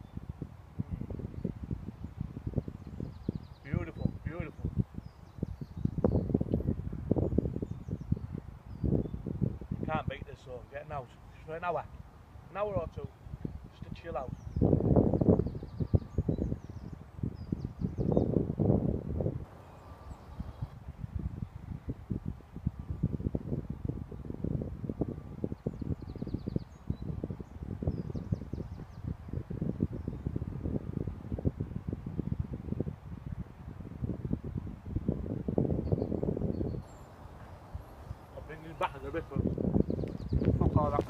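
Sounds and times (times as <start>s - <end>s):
wind gusting through trees: 0.0s - 41.0s.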